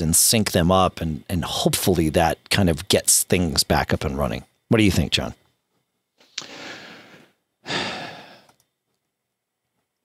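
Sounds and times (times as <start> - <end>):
man sighing: 6.4 - 8.6.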